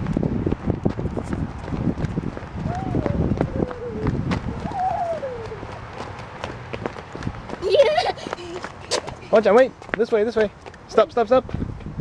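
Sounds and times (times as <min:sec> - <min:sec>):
running footsteps: 0:00.0 - 0:12.0
high voice calling out: 0:02.7 - 0:05.7.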